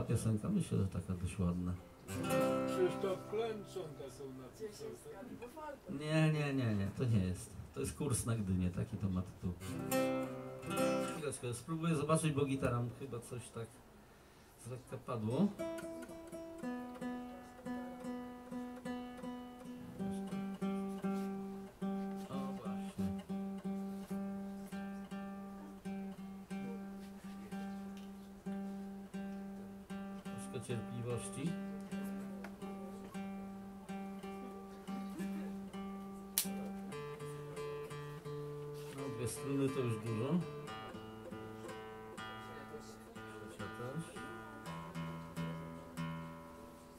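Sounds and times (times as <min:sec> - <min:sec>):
guitar string plucked: 0:31.8 - 0:44.0.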